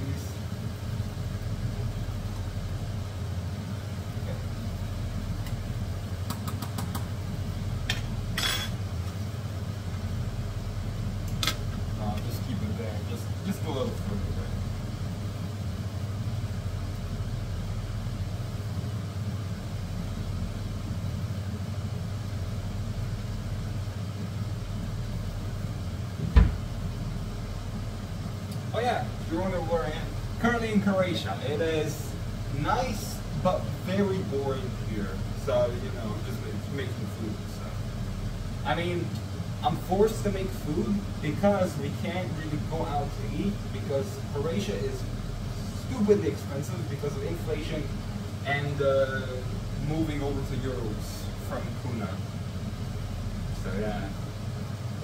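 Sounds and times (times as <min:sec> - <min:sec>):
extractor fan humming: 0:00.0 - 0:55.0
pots boiling: 0:00.0 - 0:55.0.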